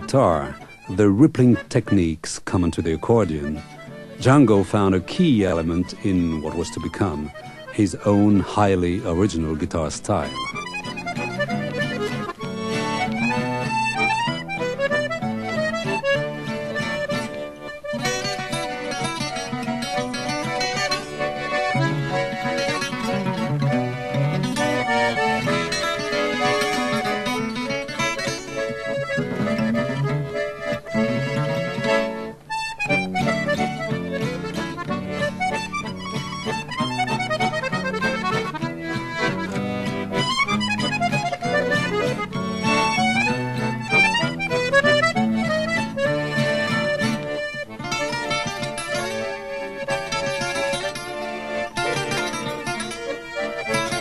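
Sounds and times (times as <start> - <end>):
acoustic guitar accompaniment: 0.0 - 54.0
button accordion melody: 0.0 - 54.0.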